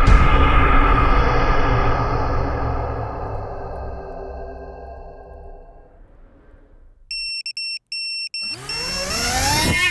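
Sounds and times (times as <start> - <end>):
high electronic beeps: 7.1 - 9.3
drone motors whining: 8.4 - 9.9.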